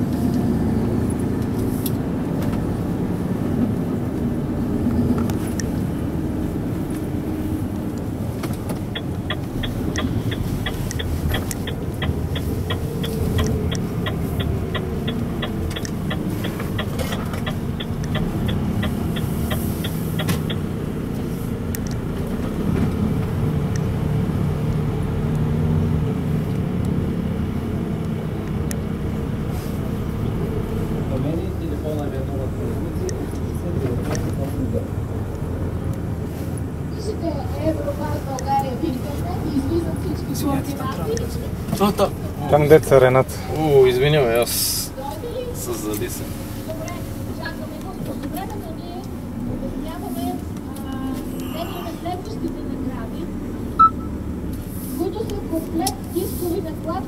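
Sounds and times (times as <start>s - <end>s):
road noise: 0.0s - 57.0s
truck diesel engine humming: 0.0s - 57.0s
light ticking: 7.8s - 20.7s.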